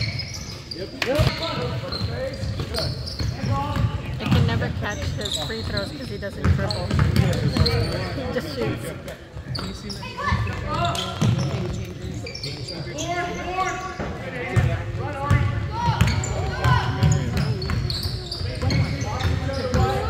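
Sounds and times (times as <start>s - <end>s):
basketball bouncing on wooden floor: 2.6s - 7.9s.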